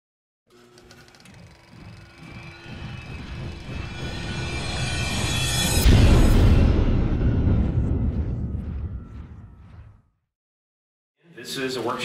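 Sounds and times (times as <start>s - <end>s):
rushing riser: 1.2s - 10.1s.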